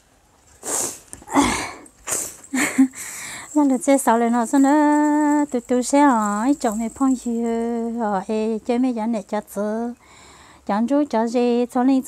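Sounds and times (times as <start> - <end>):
woman sneezing: 0.6 - 2.7
hissy breath: 0.6 - 3.6, 10.0 - 10.6.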